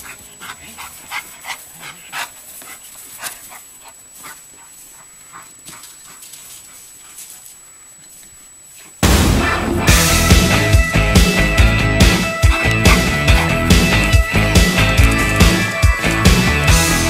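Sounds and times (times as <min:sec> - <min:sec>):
dog panting: 0:00.0 - 0:07.5, 0:12.2 - 0:15.8
paws running on grass: 0:00.0 - 0:09.0, 0:11.5 - 0:16.7.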